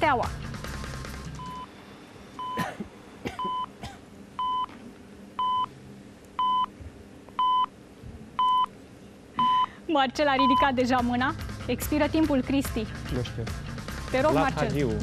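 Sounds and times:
countdown timer beeps: 9.4s - 9.7s, 10.3s - 10.8s.

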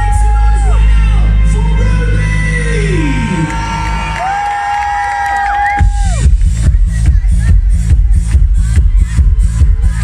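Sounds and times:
crowd cheering: 2.6s - 10.0s
pounding dance beat: 3.1s - 10.0s
orchestral dance music: 5.8s - 10.0s.

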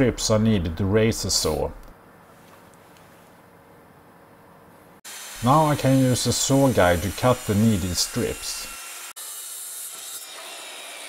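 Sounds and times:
circular saw cutting plywood: 5.1s - 11.0s.

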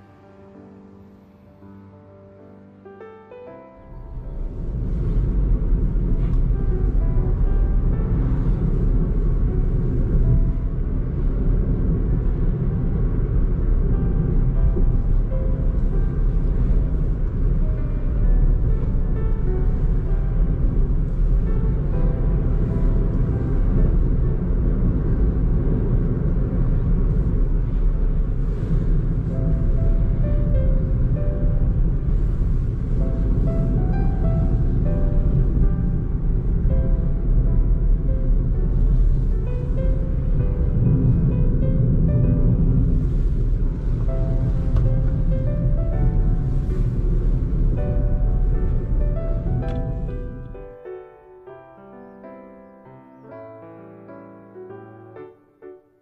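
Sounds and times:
background music melody: 0.0s - 56.0s
car road and engine rumble: 3.8s - 50.9s.

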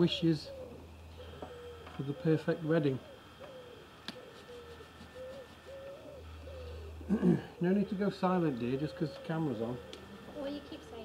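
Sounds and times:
pigeon cooing: 0.0s - 11.0s.

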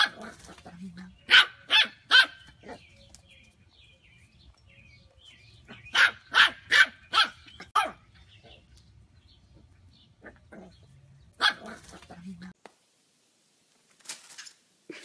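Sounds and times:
puppy barking: 0.0s - 0.6s, 1.2s - 2.8s, 5.7s - 8.0s, 11.4s - 12.1s.

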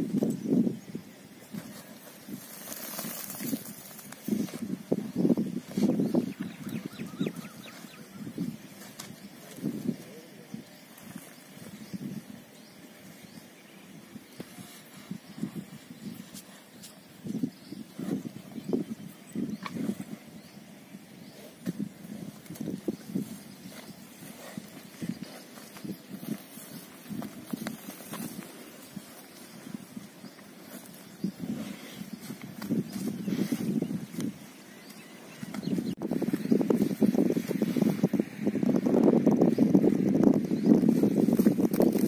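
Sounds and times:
soil scuffing and thuds: 1.5s - 6.1s.

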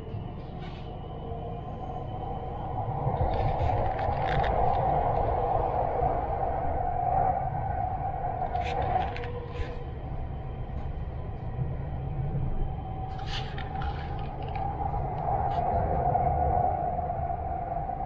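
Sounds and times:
train rumble and hum: 0.0s - 18.0s.

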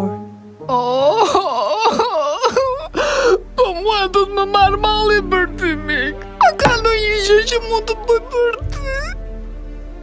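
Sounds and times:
man wailing and sobbing: 0.7s - 4.0s.

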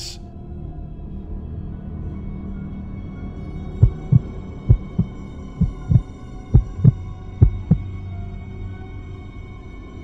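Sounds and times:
heartbeat thumps: 3.8s - 7.8s
steady low drone: 3.8s - 7.8s.

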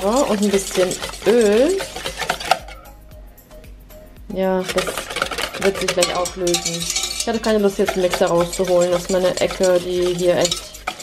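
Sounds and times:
whisk clicking against metal bowl: 0.0s - 2.9s, 4.6s - 11.0s
faint background music: 0.0s - 11.0s.

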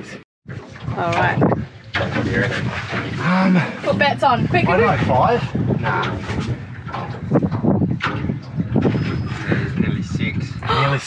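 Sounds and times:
people talking indistinctly: 1.0s - 1.6s, 2.2s - 6.3s, 9.2s - 11.0s.

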